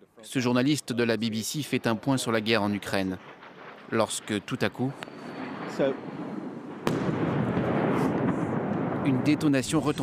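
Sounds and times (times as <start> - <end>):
rolling rumble: 1.5 - 10.0
missile blast: 2.8 - 10.0.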